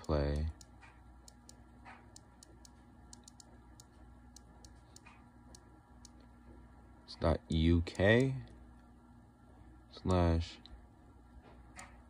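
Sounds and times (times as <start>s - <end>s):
fingers tapping touchscreen: 0.0s - 6.2s.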